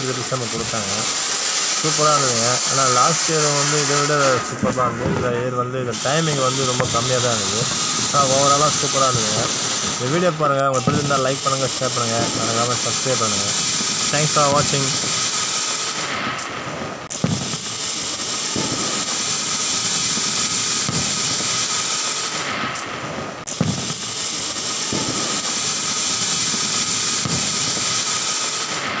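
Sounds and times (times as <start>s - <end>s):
fountain firework hissing: 0.0s - 29.0s
sharp firework crack: 0.0s - 29.0s.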